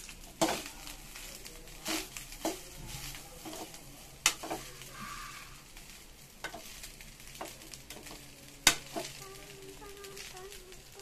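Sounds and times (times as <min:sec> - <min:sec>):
frying hiss: 0:00.0 - 0:11.0
metal spoon stirring rice: 0:00.0 - 0:11.0.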